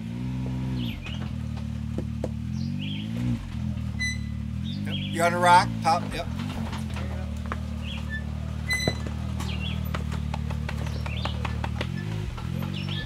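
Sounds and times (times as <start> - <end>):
utility vehicle engine running: 0.0 - 13.0
birds chirping: 0.5 - 13.0.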